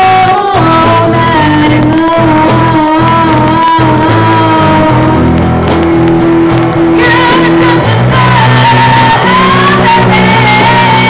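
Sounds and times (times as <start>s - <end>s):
live blues rock band: 0.0s - 11.0s
woman singing long note: 7.0s - 11.0s.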